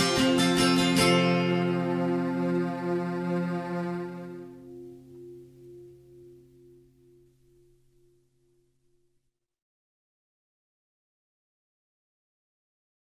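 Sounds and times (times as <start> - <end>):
acoustic guitar chord ringing: 0.0 - 9.1.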